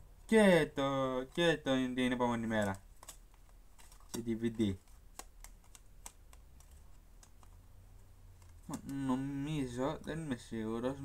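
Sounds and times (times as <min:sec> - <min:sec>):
plastic cases clicking: 0:02.5 - 0:07.6.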